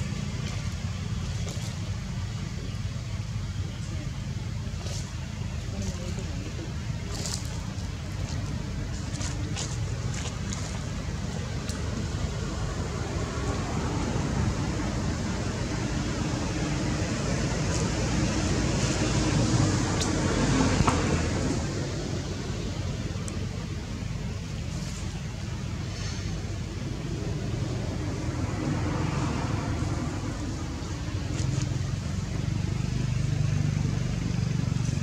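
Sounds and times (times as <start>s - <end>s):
low outdoor rumble: 0.0s - 35.0s.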